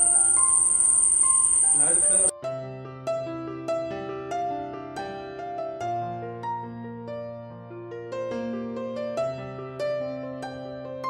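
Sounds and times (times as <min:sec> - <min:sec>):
crickets trilling: 0:00.0 - 0:02.3.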